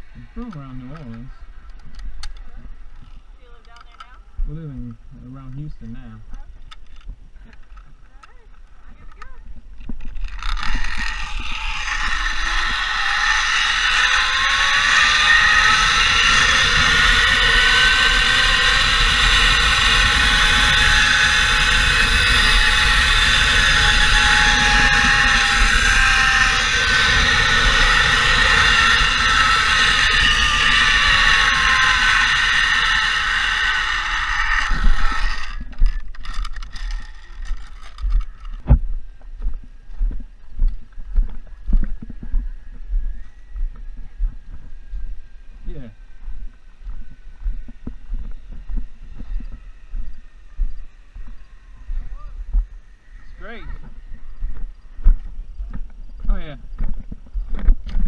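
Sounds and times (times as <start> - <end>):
wind on microphone: 8.8 - 58.0
zipline pulleys whining on cable: 10.0 - 38.7, 41.9 - 56.0.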